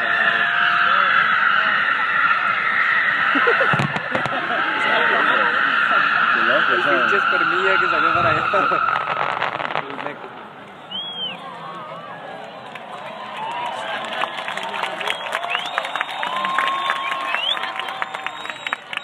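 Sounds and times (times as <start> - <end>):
crowd voices: 0.0 - 19.0
firework crackle: 3.2 - 4.8, 7.9 - 10.6
firework cracks: 3.7 - 4.6, 8.2 - 10.5
fireworks hissing: 7.6 - 10.5.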